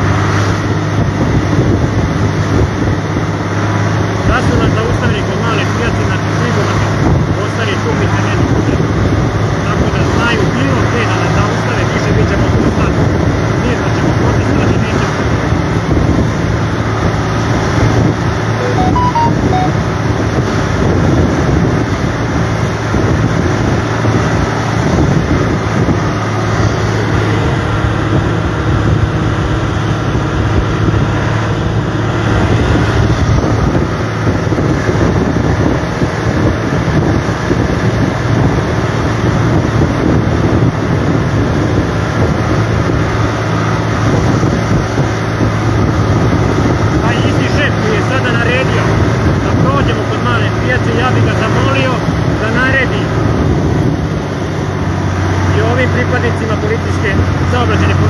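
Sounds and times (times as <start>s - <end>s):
road and wind noise: 0.0s - 58.0s
tractor diesel engine drone: 0.0s - 58.0s.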